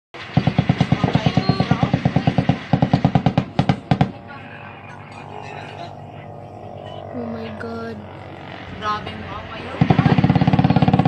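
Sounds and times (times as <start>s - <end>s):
rapid automatic gunfire: 0.2s - 4.2s, 9.8s - 11.0s.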